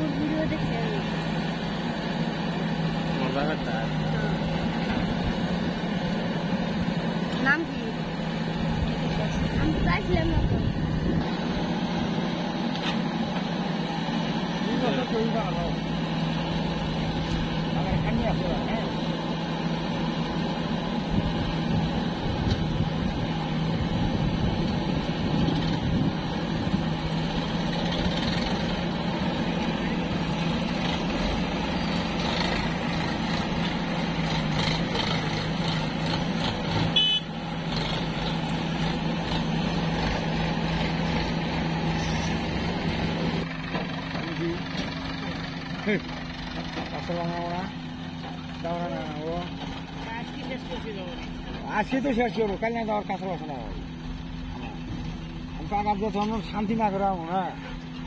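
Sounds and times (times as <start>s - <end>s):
diesel engines running: 0.0s - 58.0s.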